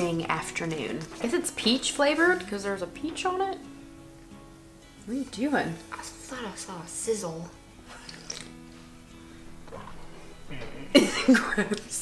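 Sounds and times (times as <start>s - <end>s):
quiet background music: 0.0s - 12.0s
sip from drink can: 7.9s - 8.6s.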